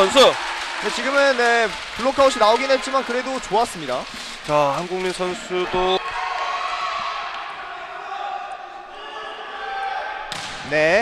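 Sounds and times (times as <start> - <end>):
murmur of voices in sports hall: 0.0 - 11.0.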